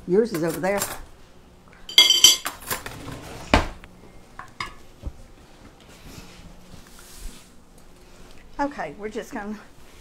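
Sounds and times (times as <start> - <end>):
metal cutlery clinking: 1.9 - 2.7
utensils and dishes clinking: 1.9 - 2.8.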